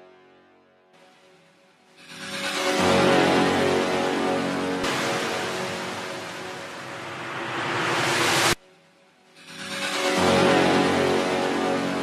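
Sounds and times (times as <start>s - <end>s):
white-noise wash: 4.8s - 8.6s.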